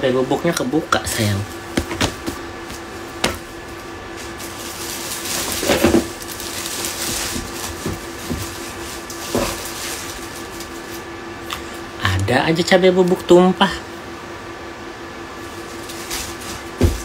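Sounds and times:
faint steady hum: 0.0s - 17.0s
clothes rustling in a suitcase: 3.7s - 11.0s
short knocks and crinkles: 4.2s - 10.7s, 16.0s - 17.0s.

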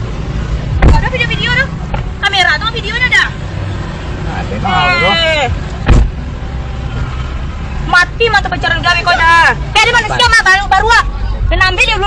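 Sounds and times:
engine and traffic rumble: 0.0s - 12.0s
short thump: 5.8s - 6.2s.

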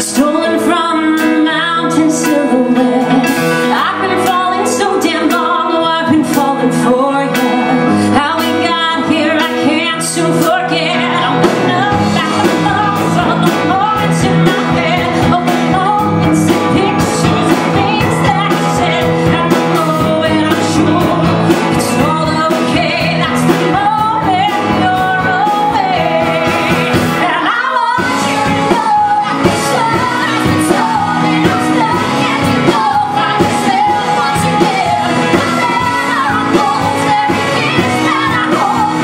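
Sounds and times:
live band playing: 0.0s - 39.0s
women singing pop-rock: 0.0s - 39.0s.

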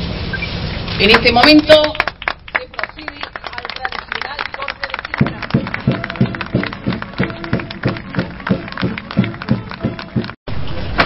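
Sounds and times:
crowd applauding: 1.0s - 10.4s
music with steady beat: 5.2s - 10.4s.

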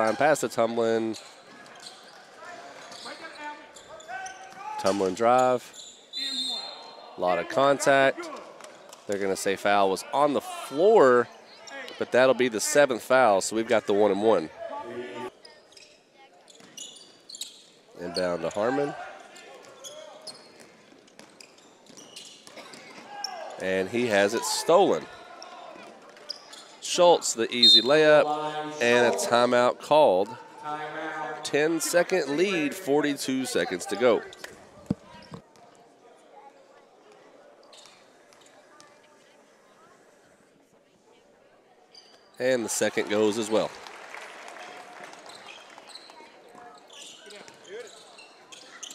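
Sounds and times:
low crowd talk: 0.0s - 48.9s
sneaker squeaks on hardwood: 15.4s - 18.2s, 19.7s - 23.4s, 46.8s - 48.9s.

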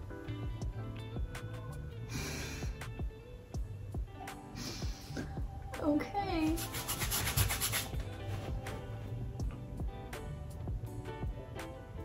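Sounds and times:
faint background music: 0.0s - 12.0s
paintbrush scrubbing on canvas: 6.6s - 8.0s.

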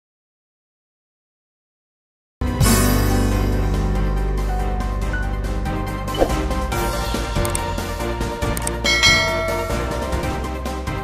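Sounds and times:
background music: 2.4s - 11.0s
bell chime: 8.8s - 10.4s.

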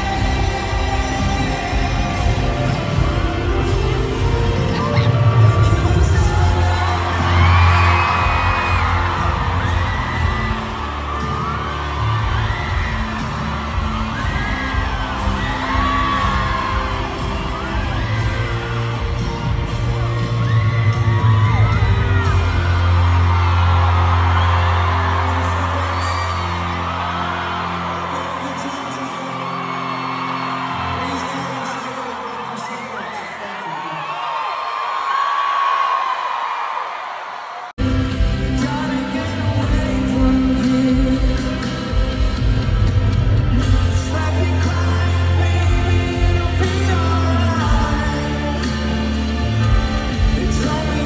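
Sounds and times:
live pop band playing: 0.0s - 33.2s, 37.8s - 51.0s
fans screaming and whooping: 0.0s - 51.0s.

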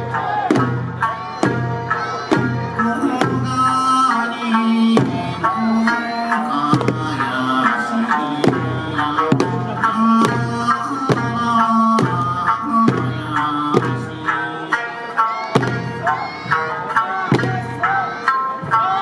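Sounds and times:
folk song with melody: 0.0s - 19.0s
hand drums struck on a steady beat: 0.4s - 14.6s, 15.5s - 18.8s.

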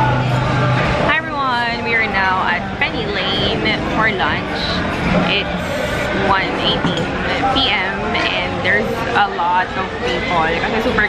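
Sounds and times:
low traffic hum: 0.0s - 11.0s
people talking: 1.1s - 11.0s.

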